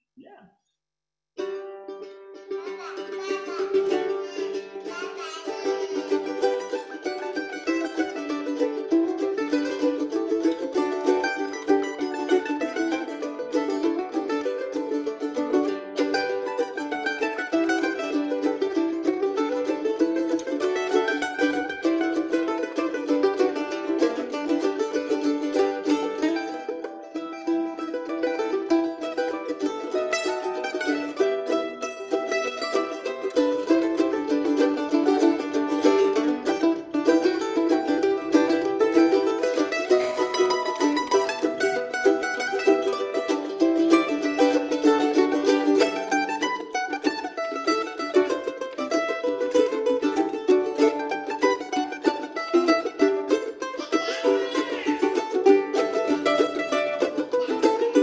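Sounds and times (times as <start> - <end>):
mandolins playing fast tune: 1.4 - 58.0.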